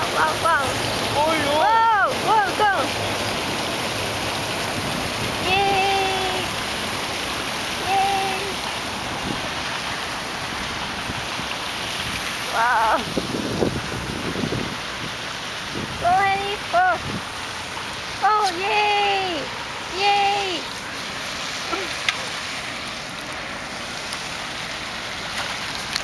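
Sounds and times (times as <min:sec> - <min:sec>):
voices: 0:00.0 - 0:03.0, 0:05.3 - 0:06.6, 0:07.7 - 0:08.8, 0:12.5 - 0:13.1, 0:15.9 - 0:17.1, 0:18.1 - 0:20.8, 0:21.6 - 0:22.6
fountain water splashing: 0:00.0 - 0:26.0.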